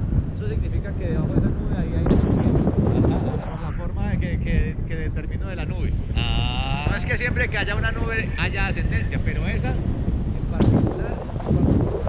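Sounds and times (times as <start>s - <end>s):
wind rushing over microphone: 0.0s - 12.0s
man's voice: 0.4s - 9.8s.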